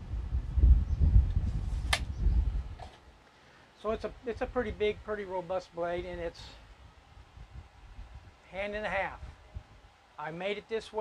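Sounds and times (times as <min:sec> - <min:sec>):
sharp click: 0:01.9 - 0:02.1.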